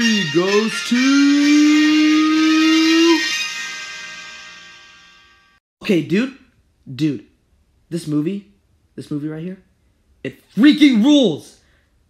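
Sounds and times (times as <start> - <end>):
loud held musical note: 0.0 - 5.5.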